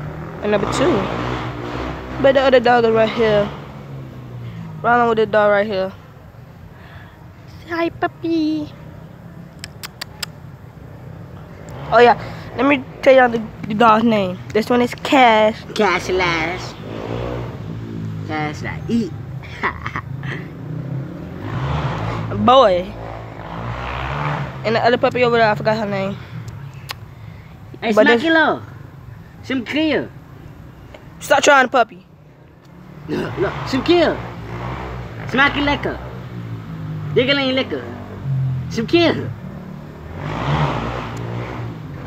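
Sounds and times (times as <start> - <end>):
vehicle engine humming: 0.0 - 42.0.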